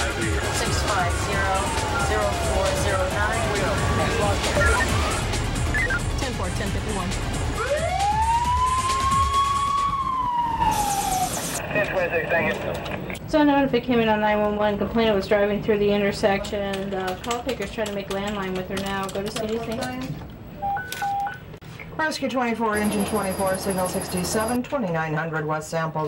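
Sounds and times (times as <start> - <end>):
police siren wailing: 0.0 - 6.2, 7.5 - 11.6
alternating two-tone alert beeps: 4.5 - 6.2.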